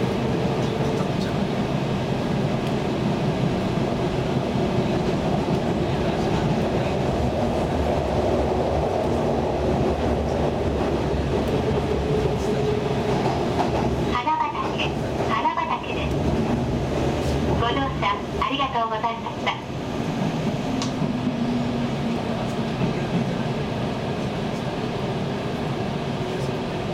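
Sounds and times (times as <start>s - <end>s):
train wheels rumbling on rail: 0.0s - 26.9s.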